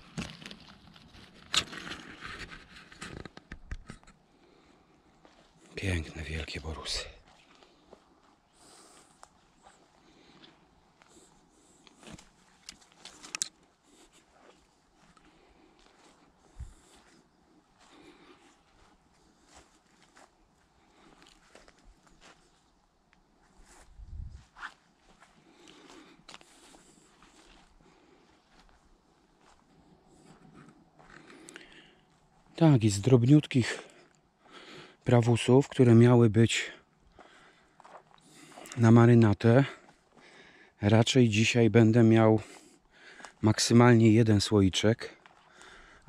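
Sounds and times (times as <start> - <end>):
twigs clicking: 11.8 - 13.6.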